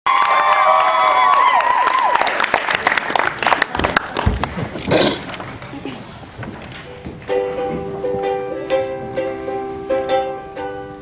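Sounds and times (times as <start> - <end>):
audience cheering and whooping: 0.1 - 3.9
audience clapping: 0.1 - 5.8.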